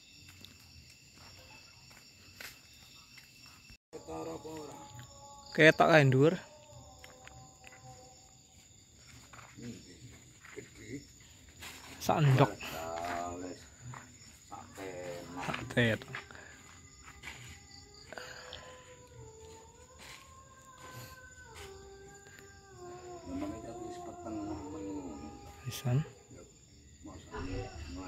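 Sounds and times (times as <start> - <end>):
distant dog howling: 4.0 - 9.5, 14.6 - 28.0.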